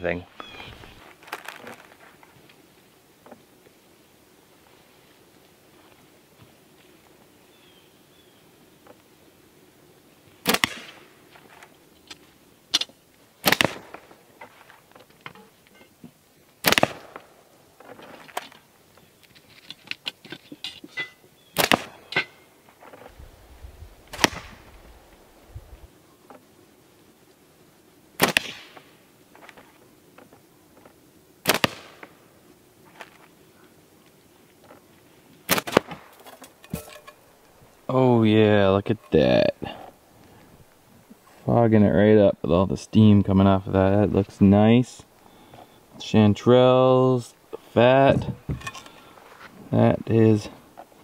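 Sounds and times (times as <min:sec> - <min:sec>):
slingshot cracks: 0:10.4 - 0:11.1, 0:12.7 - 0:14.0, 0:16.6 - 0:17.3, 0:21.6 - 0:22.4, 0:24.1 - 0:24.8, 0:28.2 - 0:28.9, 0:31.4 - 0:32.1, 0:35.5 - 0:37.2.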